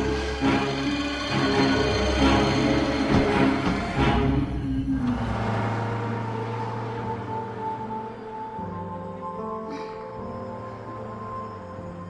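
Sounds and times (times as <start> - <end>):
eerie low drone music: 0.0 - 12.0.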